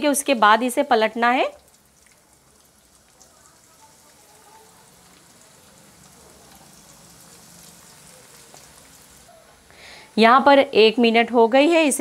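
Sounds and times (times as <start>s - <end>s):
food deep-frying in hot oil: 0.0s - 9.4s.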